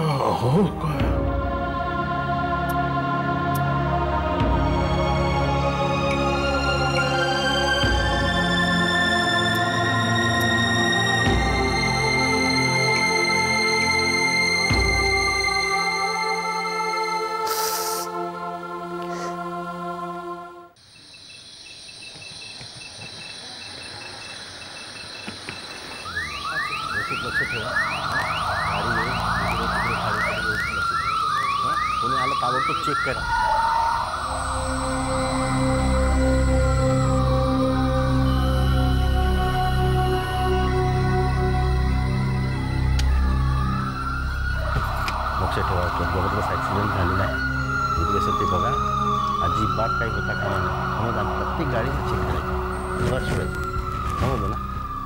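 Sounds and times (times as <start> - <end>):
crickets chirping: 20.7 - 55.0
police siren wailing: 25.8 - 55.0
sustained music chord: 31.7 - 55.0.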